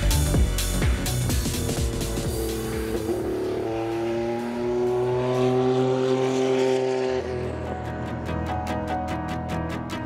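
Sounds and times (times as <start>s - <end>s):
race car engine accelerating: 0.2s - 8.3s.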